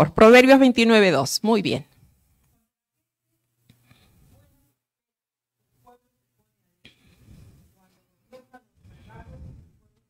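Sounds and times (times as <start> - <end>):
low rumble: 8.9 - 9.8.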